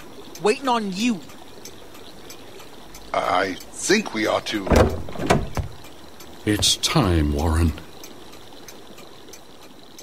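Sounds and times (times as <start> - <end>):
faint ticks: 0.0 - 10.0
soft background hiss: 0.0 - 10.0.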